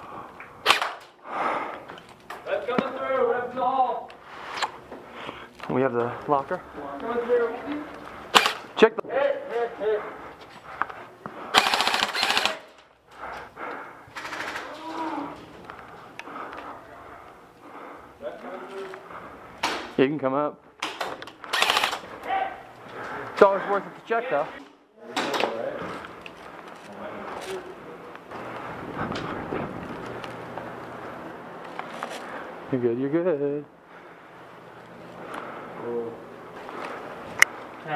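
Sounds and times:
airsoft rifle automatic bursts: 0:08.3 - 0:08.7, 0:11.5 - 0:12.8, 0:14.2 - 0:14.7, 0:21.5 - 0:22.1.

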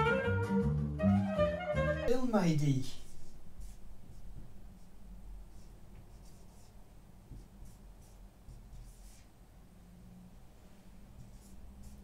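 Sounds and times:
marker scratching on whiteboard: 0:03.0 - 0:09.4, 0:11.0 - 0:12.0.

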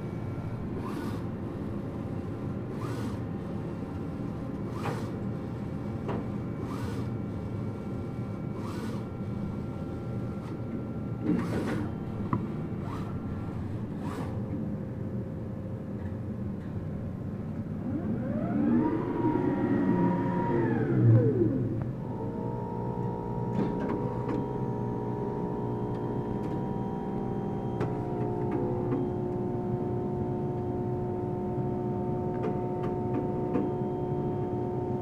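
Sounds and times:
printer humming: 0:00.0 - 0:15.2, 0:17.4 - 0:35.0
printer whine rising and falling: 0:17.6 - 0:35.0.

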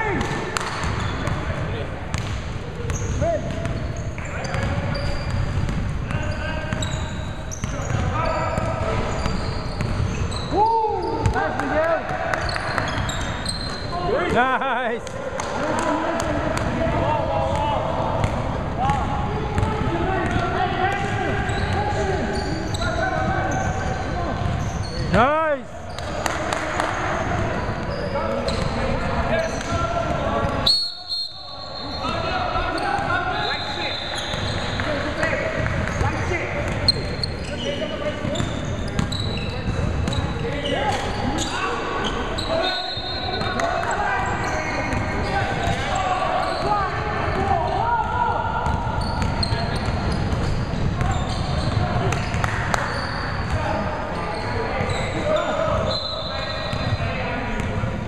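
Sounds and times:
basketballs bouncing on hardwood floor: 0:02.1 - 0:07.0, 0:07.6 - 0:10.3, 0:48.6 - 0:52.6.

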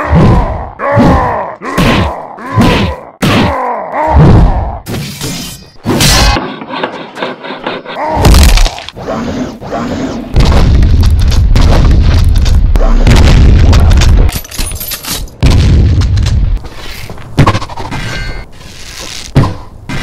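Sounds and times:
deep boom: 0:10.4 - 0:14.3.

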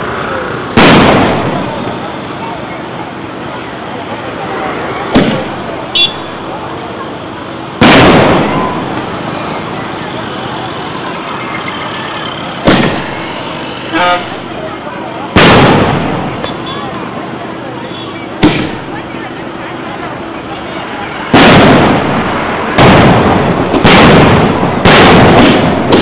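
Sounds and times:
crowd din: 0:00.0 - 0:26.0
fireworks bangs with echo: 0:00.6 - 0:03.5, 0:04.8 - 0:06.7, 0:07.4 - 0:11.3, 0:12.3 - 0:17.6, 0:18.2 - 0:19.6, 0:21.1 - 0:26.0.

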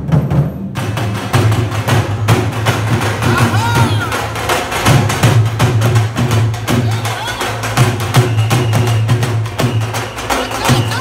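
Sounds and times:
loud fast drumming: 0:00.0 - 0:11.0.

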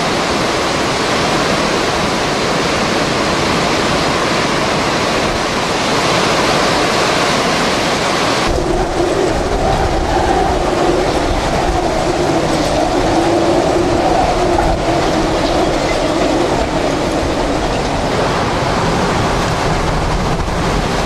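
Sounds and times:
strong wind rushing: 0:00.0 - 0:21.0
waves breaking over a dock: 0:00.0 - 0:21.0
wind buffeting microphone: 0:00.0 - 0:21.0
low whistling tone: 0:08.5 - 0:18.3.

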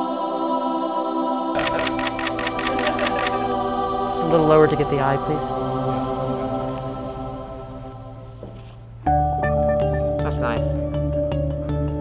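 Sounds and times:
background music: 0:00.0 - 0:12.0
camera shutter burst: 0:01.6 - 0:03.4.

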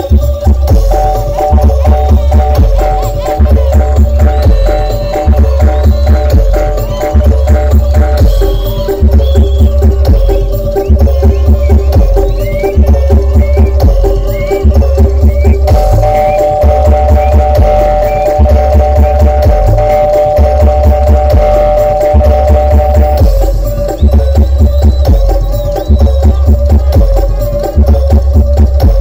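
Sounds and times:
booming folk drum beats: 0:00.0 - 0:29.0.

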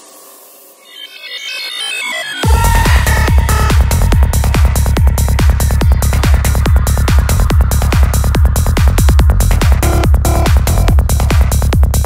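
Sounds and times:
synth wash: 0:00.0 - 0:11.0.

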